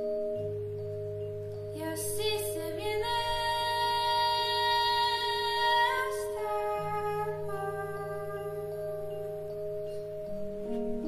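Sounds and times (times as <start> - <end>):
woman singing: 1.8 - 9.2.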